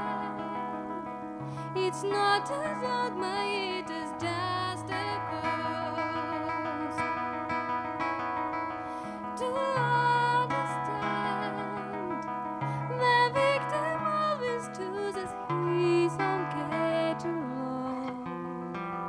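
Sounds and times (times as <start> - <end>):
woman singing jazz: 0.0 - 1.1, 1.7 - 7.2, 9.4 - 18.4
guitar playing chords: 0.0 - 19.0.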